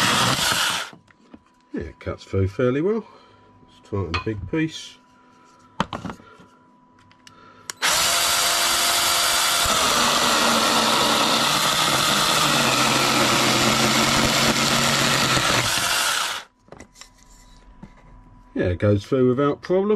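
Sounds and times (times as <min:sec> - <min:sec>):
electric chainsaw cutting timber: 0:00.0 - 0:01.0, 0:07.8 - 0:16.5.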